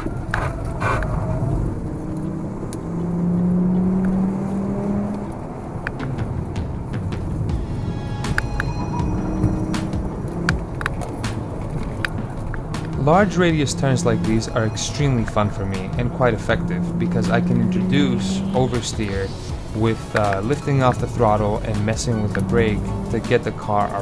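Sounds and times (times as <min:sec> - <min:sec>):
car engine drone in cabin: 0:00.0 - 0:24.0.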